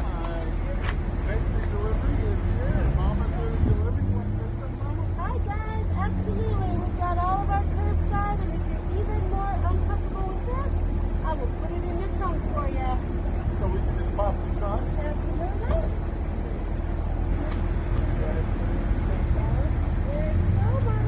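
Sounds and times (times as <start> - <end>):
car engine idling: 0.0 - 21.0
indistinct conversation: 0.0 - 21.0.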